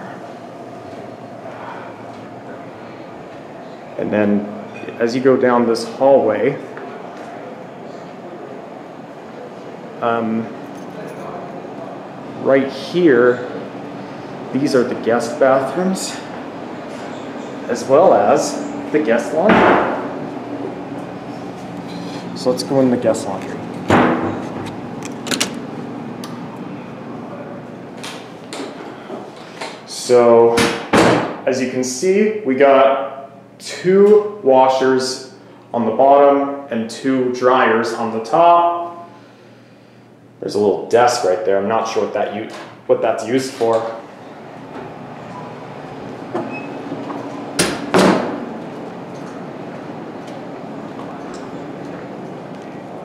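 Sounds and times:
low room hum: 0.0 - 53.0
steady background noise: 0.0 - 53.0
door handle and latch clicks: 25.0 - 25.6
keycard lock click: 25.0 - 25.6.

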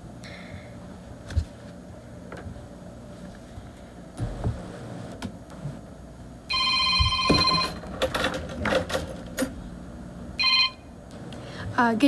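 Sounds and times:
electronic ringing tone: 6.5 - 7.8, 10.4 - 10.9.

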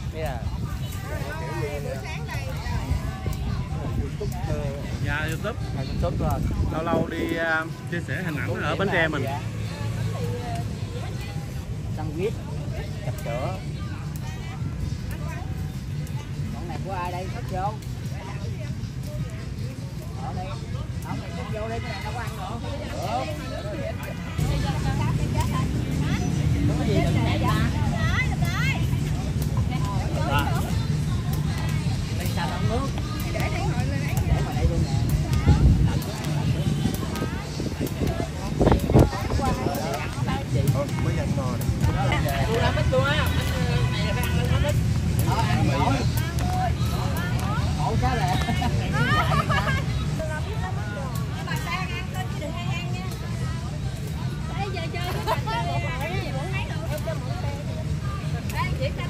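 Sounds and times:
people chatting: 0.0 - 59.0
people talking: 0.0 - 59.0.

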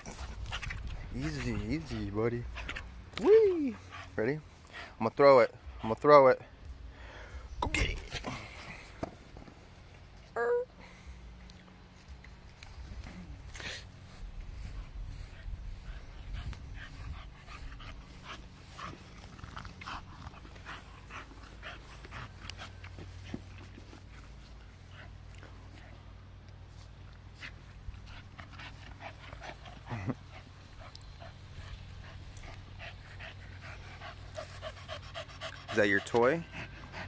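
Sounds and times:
dog panting: 0.0 - 3.1, 3.7 - 6.3, 12.6 - 26.0, 27.4 - 37.0.

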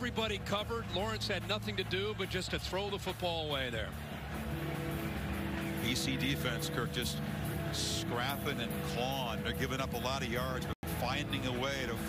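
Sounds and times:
crowd noise: 0.0 - 12.0
stadium music with held notes: 0.0 - 12.0.

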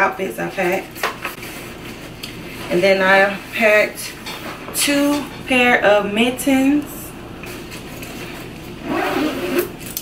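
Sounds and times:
backpack being handled: 8.8 - 9.6
zipper rasping: 8.8 - 10.0.

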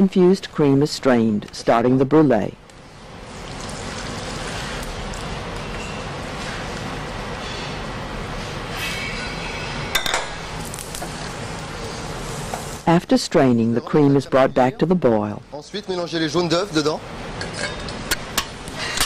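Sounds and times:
kitchen background noise: 0.0 - 19.0.

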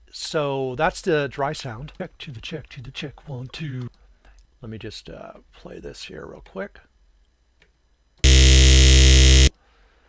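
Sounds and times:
buzzy synthesizer note: 8.2 - 9.5.

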